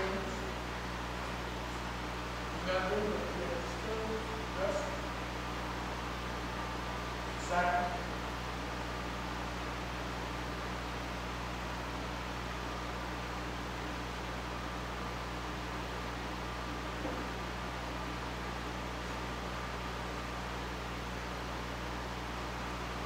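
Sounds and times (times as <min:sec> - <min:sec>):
air conditioner hum: 0:00.0 - 0:23.0.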